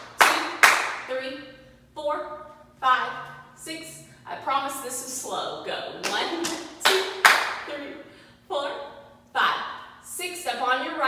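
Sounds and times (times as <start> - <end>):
sharp hand claps: 0.0 - 1.0, 6.0 - 7.6
woman's voice keeping beat: 0.0 - 11.0.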